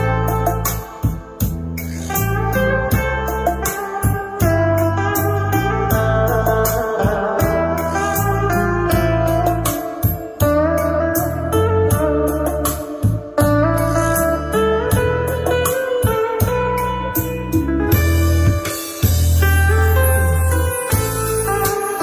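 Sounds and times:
pulsing bass line: 0:00.0 - 0:21.9
guitar music from a boombox: 0:00.0 - 0:22.0.

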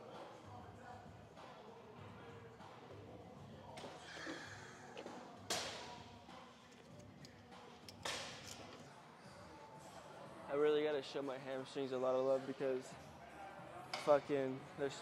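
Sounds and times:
faint music: 0:00.0 - 0:15.0.

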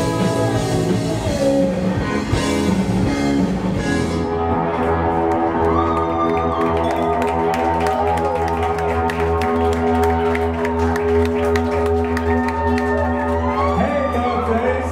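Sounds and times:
rock band playing live: 0:00.0 - 0:14.9.

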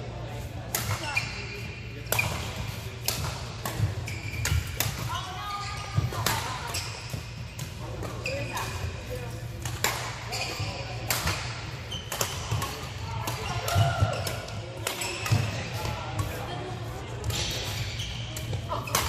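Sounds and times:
sneakers squeaking on court floor: 0:01.0 - 0:19.0
racket striking shuttlecock: 0:09.6 - 0:10.3, 0:11.0 - 0:16.3.

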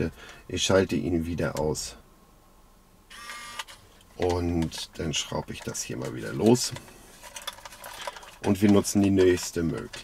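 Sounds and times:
small electric motor whirring: 0:03.1 - 0:03.8.

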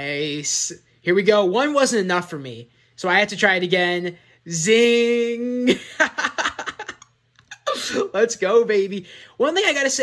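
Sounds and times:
man laughing: 0:05.4 - 0:08.4.

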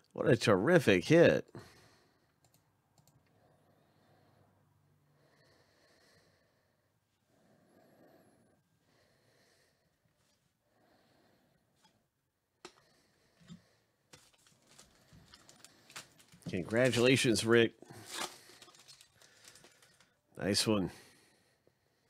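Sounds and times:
faint clicks: 0:02.4 - 0:03.4.

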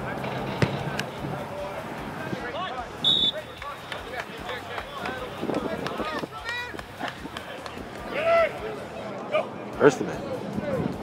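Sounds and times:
open-air field noise: 0:00.0 - 0:11.0.

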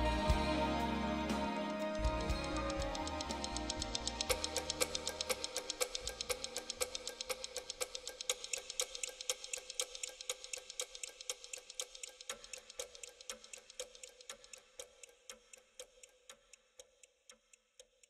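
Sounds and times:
music: 0:00.0 - 0:07.6
clock ticking: 0:00.0 - 0:18.0.

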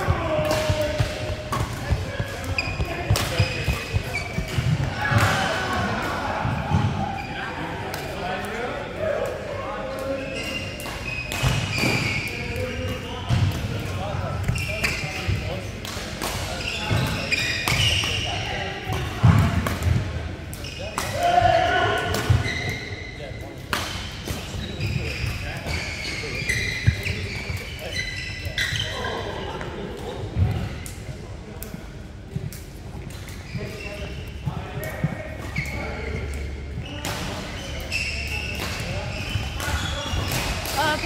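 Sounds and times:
shoes squeaking on court: 0:00.0 - 0:05.4, 0:16.5 - 0:18.3, 0:24.4 - 0:29.4, 0:33.1 - 0:41.0
racket hitting shuttlecock: 0:00.1 - 0:05.4.

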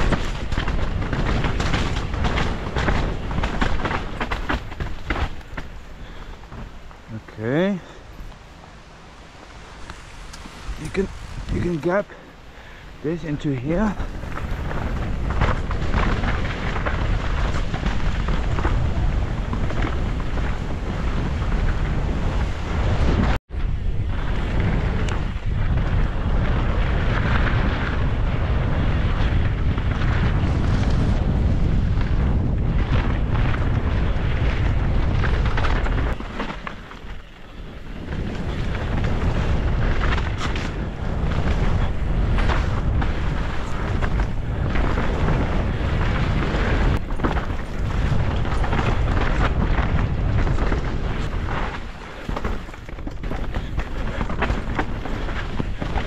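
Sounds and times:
bike tyres rolling over dirt and rock: 0:00.0 - 0:56.0
wind buffeting microphone: 0:00.0 - 0:56.0.

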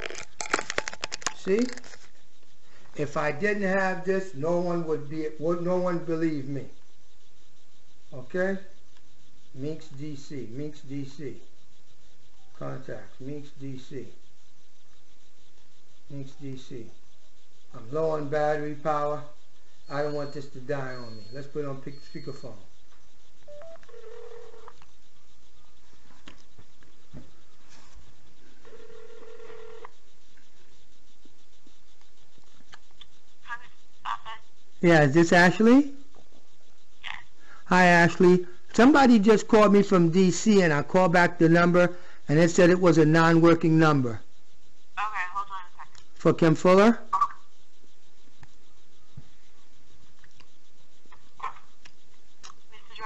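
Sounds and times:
short beeps: 0:19.9 - 0:22.6, 0:23.5 - 0:23.8
telephone ringback tone: 0:23.5 - 0:24.7, 0:28.6 - 0:29.9.

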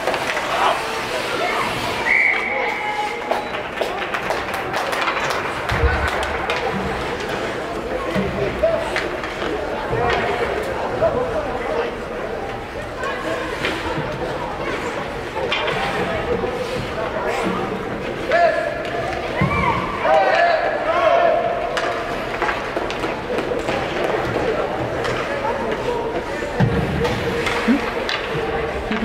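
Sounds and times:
echoing indistinct chatter: 0:00.0 - 0:29.0.

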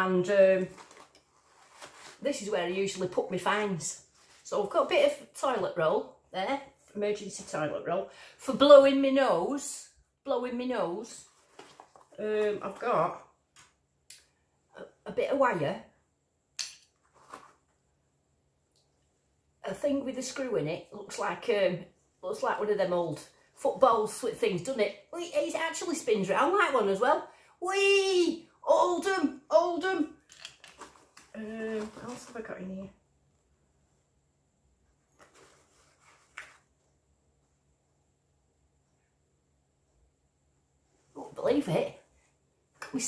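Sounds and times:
bag rustling: 0:00.6 - 0:02.4.

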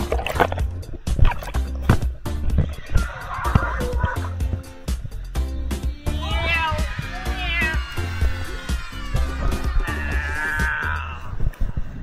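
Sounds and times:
song with drum beat and bass: 0:00.0 - 0:11.1.

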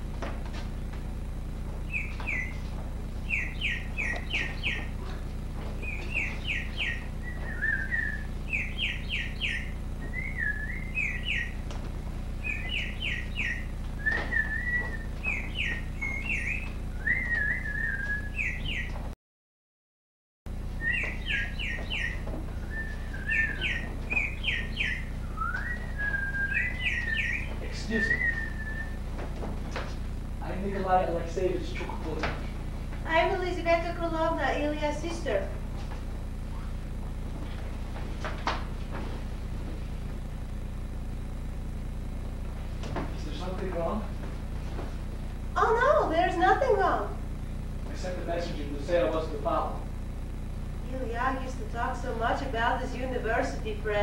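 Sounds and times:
steady low hum: 0:00.0 - 0:19.2, 0:20.5 - 0:54.0
songbird chirping and warbling: 0:01.9 - 0:11.6, 0:12.4 - 0:19.0, 0:20.8 - 0:29.0, 0:36.4 - 0:37.0.

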